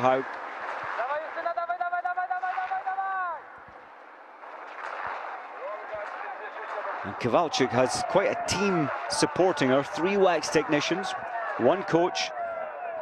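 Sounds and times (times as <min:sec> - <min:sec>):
faint crowd noise: 0:00.0 - 0:13.0
spectator shouting a cheer: 0:01.6 - 0:03.5, 0:06.3 - 0:13.0.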